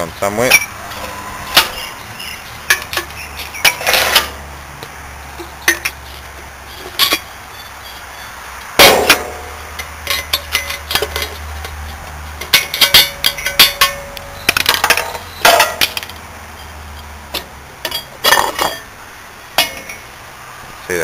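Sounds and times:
metallic clangs and clinks: 0.4s - 1.9s, 5.4s - 6.0s, 6.8s - 7.3s, 8.8s - 11.5s, 12.4s - 18.9s, 19.6s - 20.1s.

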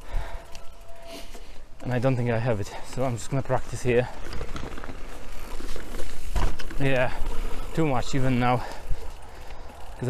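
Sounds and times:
bike tyres crackling on leaves: 0.0s - 10.0s.

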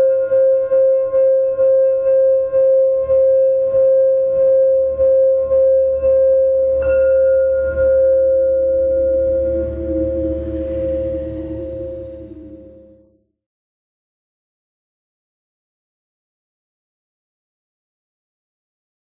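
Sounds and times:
singing bowl ringing: 0.0s - 13.1s
lower tone: 0.0s - 13.3s.

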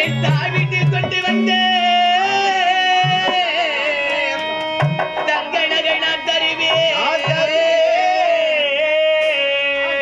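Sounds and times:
wavering melodic line: 0.0s - 2.6s
drum strokes: 0.0s - 3.7s, 4.6s - 5.9s, 6.6s - 7.9s.

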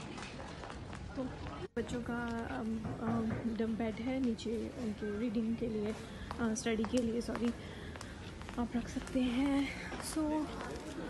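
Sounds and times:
store background noise: 0.0s - 11.0s
woman speaking: 8.6s - 10.7s.

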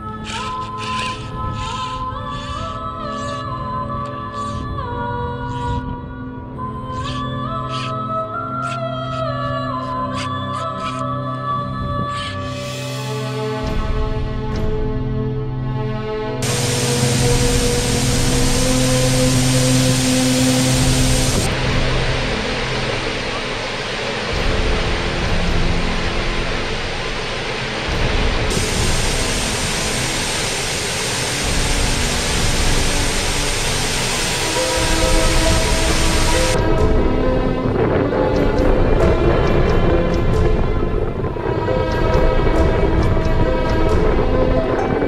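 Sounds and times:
waterfall rushing: 16.4s - 36.6s.

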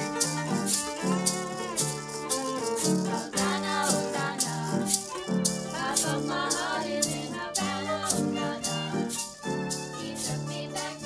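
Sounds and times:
bowed violin: 0.0s - 11.0s
plucked bouzouki: 0.0s - 11.0s
shaker rattling: 0.0s - 11.0s
upright piano: 0.0s - 11.0s.

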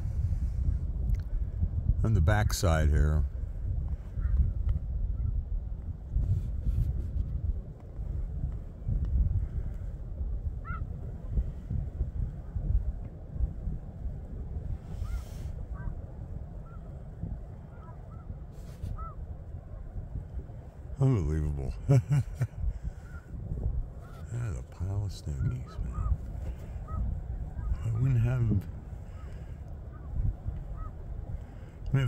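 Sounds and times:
steady low rumble: 0.0s - 32.0s
distant geese honking: 10.6s - 11.4s, 14.8s - 20.0s, 22.8s - 31.8s.

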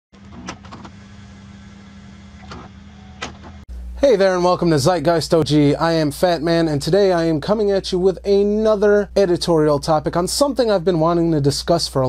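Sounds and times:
electrical hum with hiss: 0.2s - 12.0s.

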